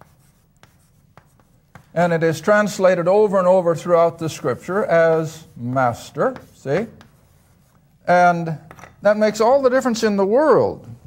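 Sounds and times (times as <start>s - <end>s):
chalk writing on chalkboard: 0.0s - 2.9s, 3.8s - 8.0s.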